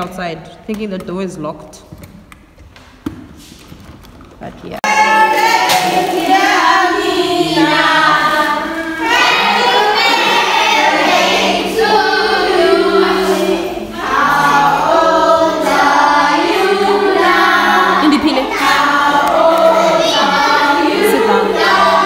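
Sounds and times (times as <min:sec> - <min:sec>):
children singing in harmony: 0:04.8 - 0:22.0.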